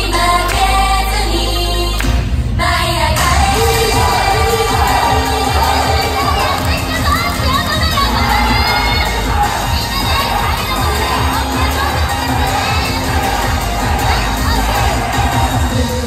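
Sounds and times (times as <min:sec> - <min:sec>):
audience shouting and cheering: 0:03.0 - 0:16.0
upbeat pop backing track: 0:03.2 - 0:16.0.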